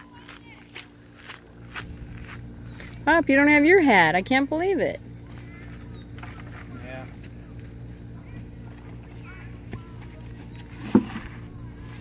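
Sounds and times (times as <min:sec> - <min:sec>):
distant voices: 0:00.0 - 0:12.0
steady low hum: 0:00.0 - 0:12.0.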